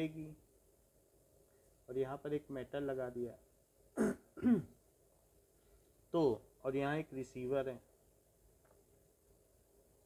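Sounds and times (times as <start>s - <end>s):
man clearing his throat: 4.0s - 4.8s.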